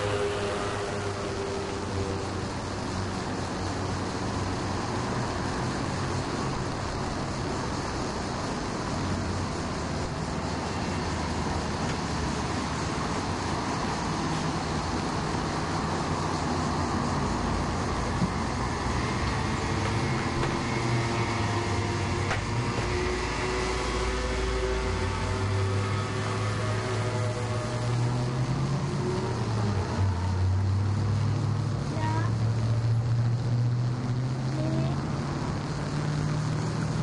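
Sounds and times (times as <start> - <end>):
road traffic engines: 0.0 - 37.0.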